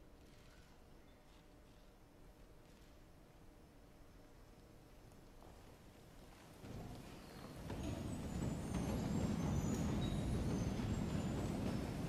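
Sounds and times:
audience rustling and shuffling: 5.3s - 12.0s.

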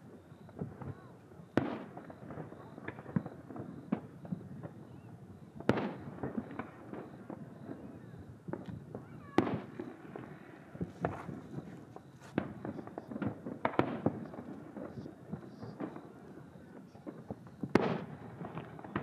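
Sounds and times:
firework pops and crackle: 0.0s - 19.0s
distant firework booms: 0.1s - 19.0s.

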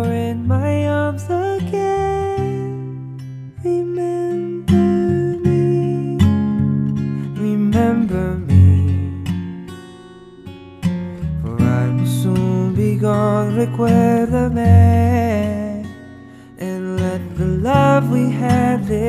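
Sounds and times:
acoustic guitar strummed chords: 0.0s - 19.0s.

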